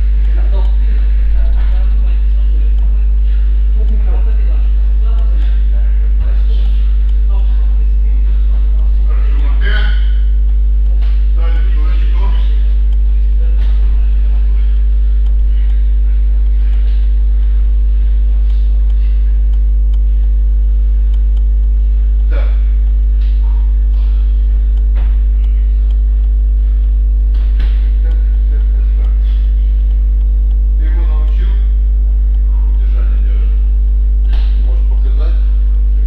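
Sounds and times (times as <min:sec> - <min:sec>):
electrical mains hum: 0:00.0 - 0:36.0.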